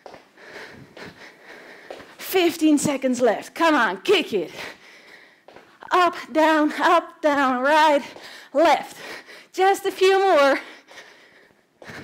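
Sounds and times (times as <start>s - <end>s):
woman breathing hard: 0.0s - 2.2s, 4.5s - 5.8s, 8.1s - 9.6s, 10.6s - 12.0s.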